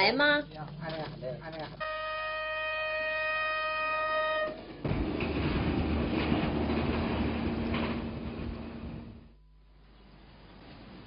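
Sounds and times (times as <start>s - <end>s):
train horn blast: 1.8s - 4.7s
train rumbling along track: 3.8s - 9.3s.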